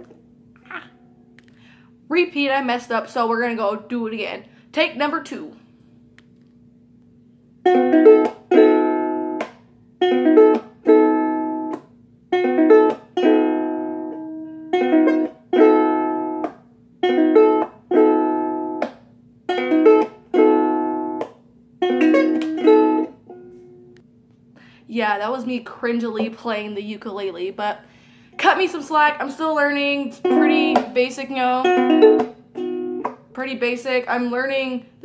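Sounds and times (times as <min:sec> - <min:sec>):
ukulele chord strums: 0:07.6 - 0:24.1, 0:30.1 - 0:33.4.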